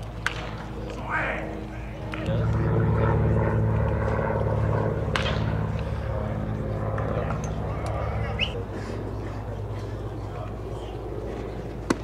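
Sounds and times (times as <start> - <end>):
faint crowd chatter: 0.0 - 12.0
low mechanical drone: 0.0 - 12.0.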